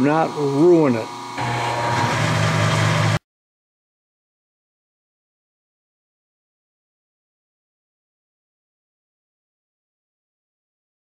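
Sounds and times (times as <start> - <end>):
milling machine humming: 0.0 - 3.2.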